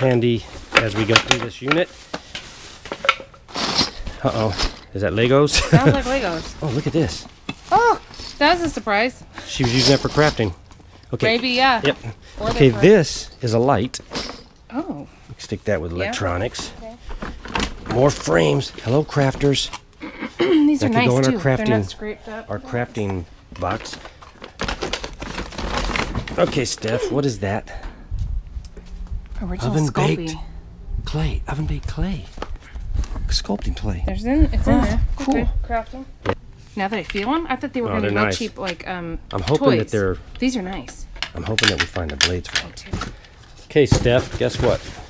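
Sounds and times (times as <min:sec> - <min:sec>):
clicks taps and rustles of items: 0:00.7 - 0:03.4, 0:40.7 - 0:44.9
rummaging in plastic tote: 0:05.6 - 0:10.6, 0:23.6 - 0:27.1, 0:42.9 - 0:45.0
low rumble of handling: 0:23.2 - 0:35.9
small hard pieces rattling: 0:23.6 - 0:26.9.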